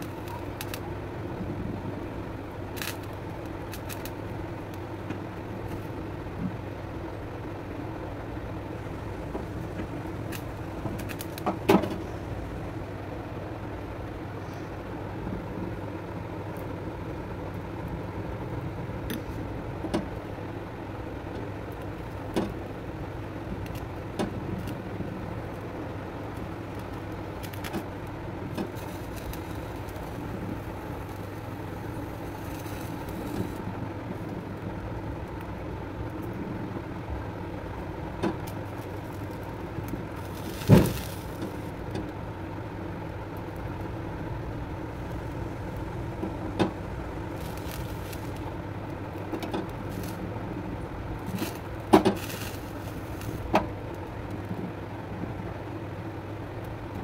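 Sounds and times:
gas stove burner rumble: 0:00.0 - 0:57.0.

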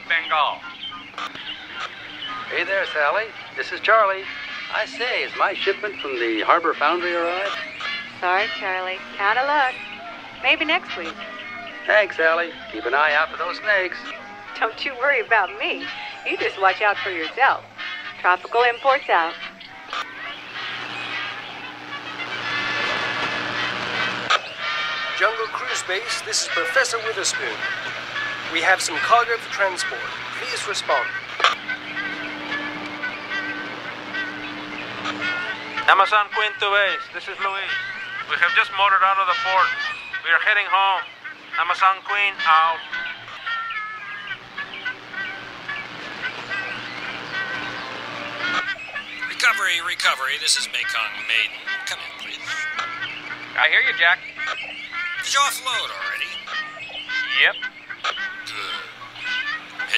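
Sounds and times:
birds chirping and whistling: 0:00.0 - 0:22.2, 0:34.2 - 0:59.9
faint music: 0:00.0 - 0:59.9
radio static hiss and crackle: 0:19.9 - 0:42.8, 0:44.4 - 0:54.6, 0:55.2 - 0:56.6, 0:57.4 - 0:59.9.

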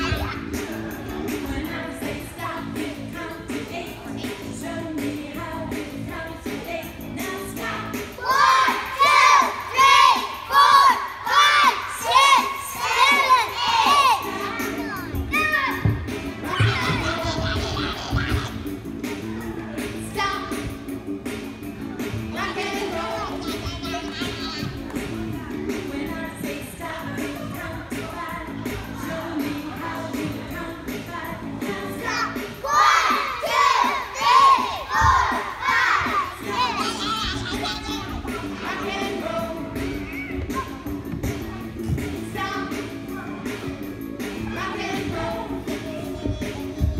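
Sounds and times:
children shouting and singing: 0:00.0 - 0:05.5, 0:06.1 - 0:20.8, 0:21.8 - 0:46.9
backing music track: 0:00.0 - 0:46.9.

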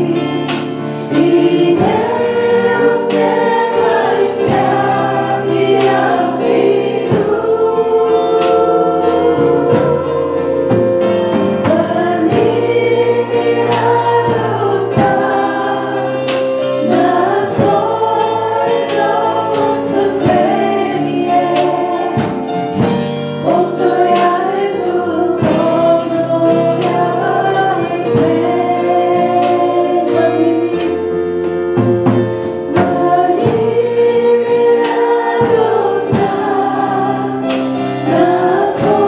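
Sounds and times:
women singing into microphones: 0:00.0 - 0:10.8, 0:11.6 - 0:39.0
regular drum beat: 0:00.0 - 0:39.0.

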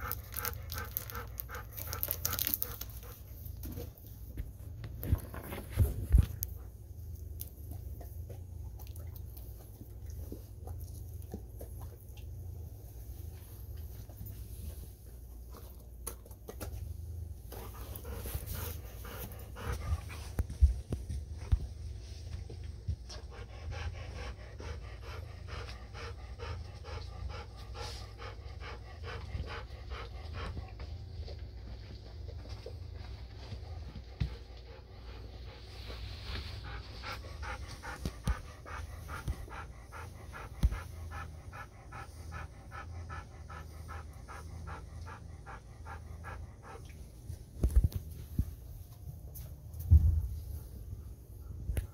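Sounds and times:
dog panting: 0:00.0 - 0:07.0, 0:17.4 - 0:47.5.

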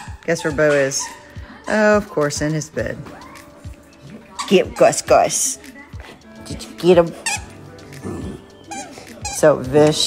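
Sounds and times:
squeaky dog toy squeaking: 0:00.0 - 0:01.4, 0:04.3 - 0:05.3, 0:07.0 - 0:07.7, 0:08.6 - 0:10.0
background music: 0:00.0 - 0:10.0.

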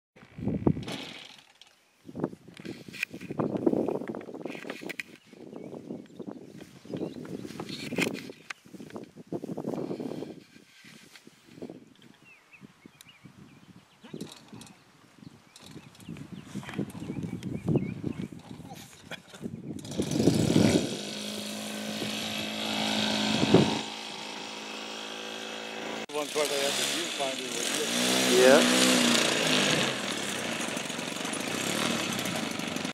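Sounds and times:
small petrol engine running: 0:19.8 - 0:32.9.

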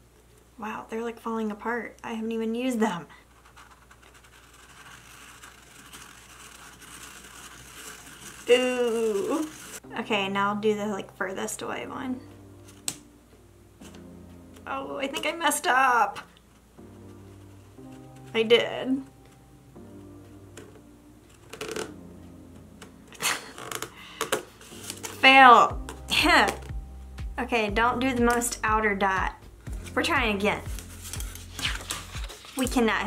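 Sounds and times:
soft background music: 0:00.2 - 0:33.0
pen scratching on paper: 0:03.3 - 0:09.8.

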